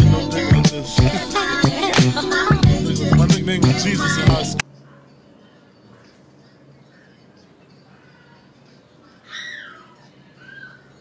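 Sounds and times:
high animal call: 0:09.0 - 0:11.0.

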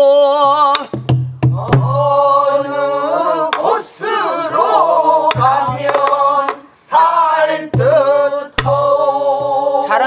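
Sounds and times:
group singing in unison: 0:01.5 - 0:10.0
barrel drum strokes: 0:05.2 - 0:06.7, 0:07.6 - 0:09.6.

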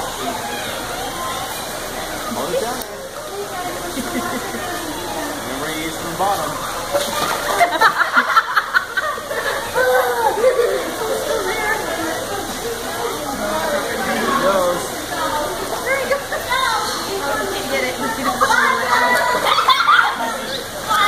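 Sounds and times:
children and adults chattering: 0:00.0 - 0:21.0
water rushing: 0:00.0 - 0:21.0.

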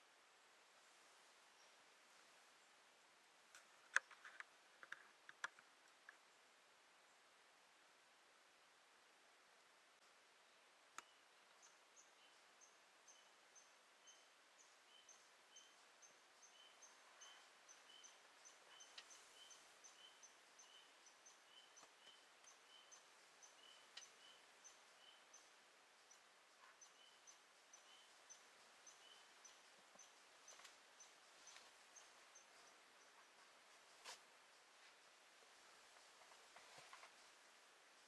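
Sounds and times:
faint sharp clicks: 0:03.5 - 0:06.2, 0:10.9 - 0:11.6, 0:21.6 - 0:24.2
faint high chirp: 0:11.0 - 0:33.3.

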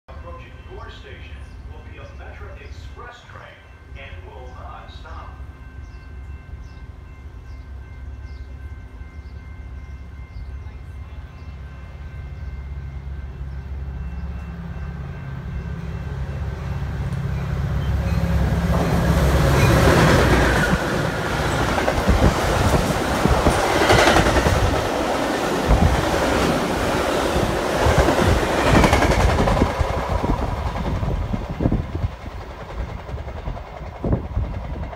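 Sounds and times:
diesel locomotive rumble: 0:04.0 - 0:34.9.

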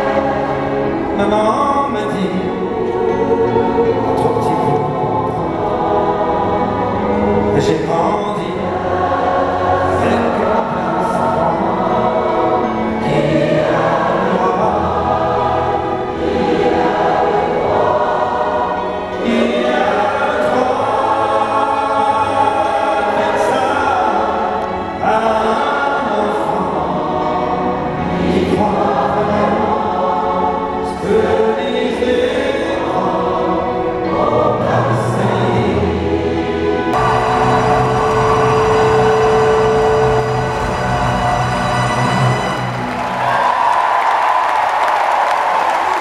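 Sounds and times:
massed choir singing: 0:00.0 - 0:46.0
symphony orchestra: 0:00.0 - 0:46.0.

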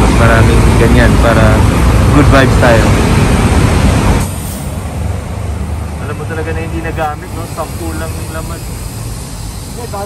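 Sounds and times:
highway traffic noise: 0:00.0 - 0:10.0.

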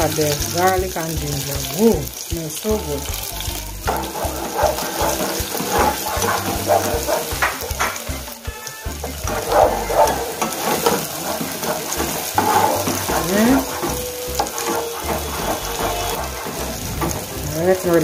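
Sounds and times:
vegetables sizzling in hot oil: 0:00.0 - 0:18.0
spatula scraping pot: 0:03.8 - 0:08.0, 0:09.1 - 0:17.9.

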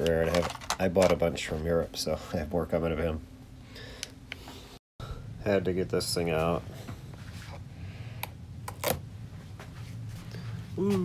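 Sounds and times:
plastic items clicking and tapping: 0:00.0 - 0:01.3
steady low hum: 0:00.0 - 0:11.0.

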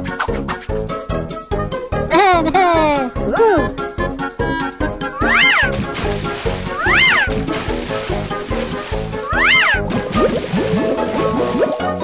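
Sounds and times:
upbeat cartoon music: 0:00.0 - 0:12.0
high squeaky calls: 0:05.2 - 0:05.8, 0:09.2 - 0:09.9.

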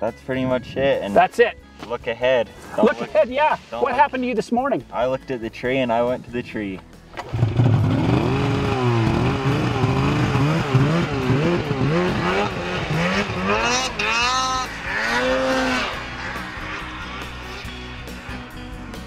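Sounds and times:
snowmobile engine revving: 0:07.2 - 0:19.0.

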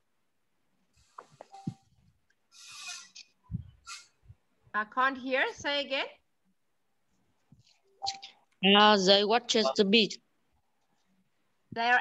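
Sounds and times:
breathy hiss: 0:02.5 - 0:03.2.

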